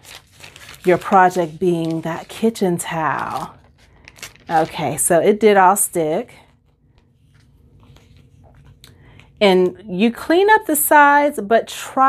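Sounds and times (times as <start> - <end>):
paper crinkling and scratching: 0.0 - 9.3.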